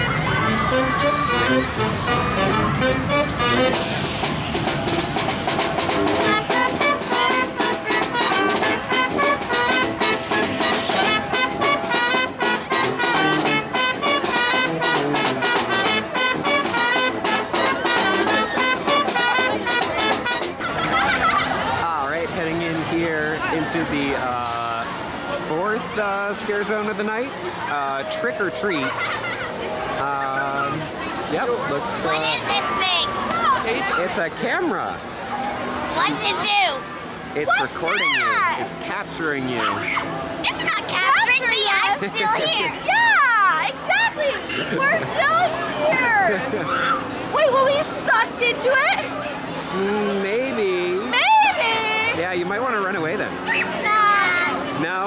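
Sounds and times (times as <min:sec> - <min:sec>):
brass band playing: 0:00.0 - 0:21.2, 0:27.5 - 0:29.0
percussion strikes: 0:03.2 - 0:20.8.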